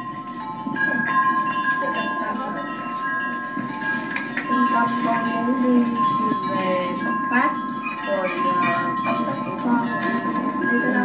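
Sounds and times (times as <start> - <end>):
metal wind chime ringing: 0.0 - 11.0.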